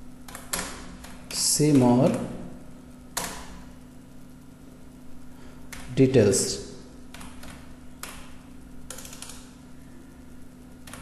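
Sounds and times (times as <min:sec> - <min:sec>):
low electrical hum: 0:00.0 - 0:11.0
computer keyboard keystroke: 0:00.2 - 0:02.2, 0:03.1 - 0:03.5, 0:05.7 - 0:05.9, 0:07.1 - 0:09.5.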